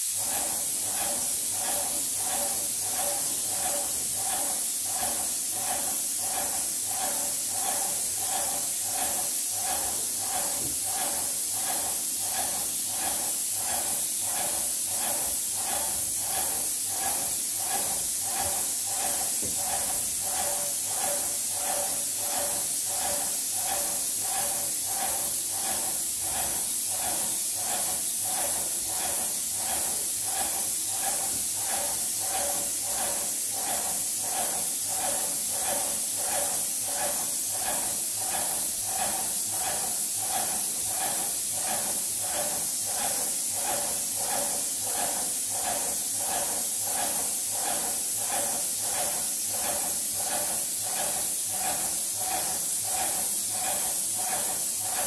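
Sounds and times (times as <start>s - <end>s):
paint sprayer hissing: 0.0s - 55.0s
piston pump pulsing: 0.0s - 55.0s.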